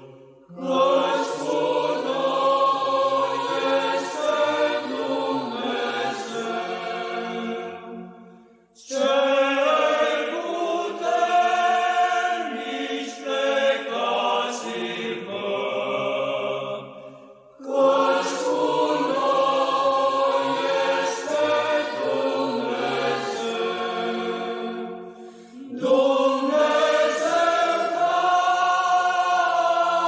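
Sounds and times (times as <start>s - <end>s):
choral chant: 0.0s - 30.0s.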